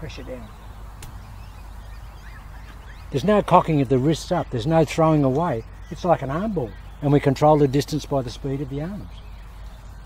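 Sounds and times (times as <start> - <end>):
distant bird calls: 0.0 - 10.0.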